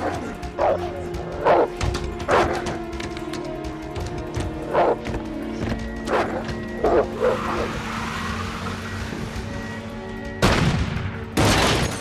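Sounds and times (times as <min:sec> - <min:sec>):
dog barks: 0:00.0 - 0:02.8, 0:04.7 - 0:05.0, 0:06.1 - 0:07.7
low droning music score: 0:00.0 - 0:12.0.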